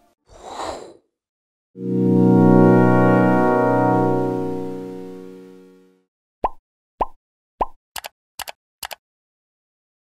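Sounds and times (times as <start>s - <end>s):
synthesizer chord: 1.8s - 6.0s.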